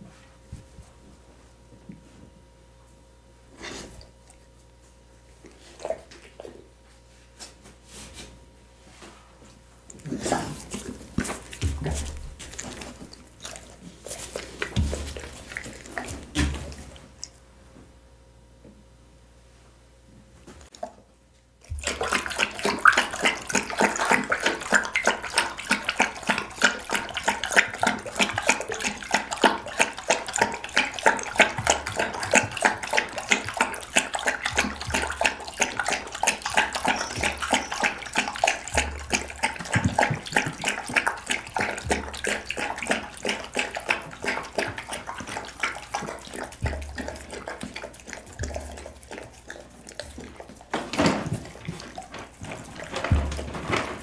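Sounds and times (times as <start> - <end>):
dog lapping soup: 5.4 - 6.8, 9.9 - 17.4, 21.6 - 54.0.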